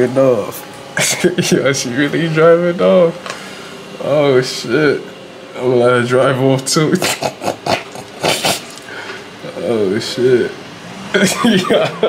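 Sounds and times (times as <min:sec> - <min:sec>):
man laughing hard: 0:06.9 - 0:08.8, 0:11.2 - 0:12.0.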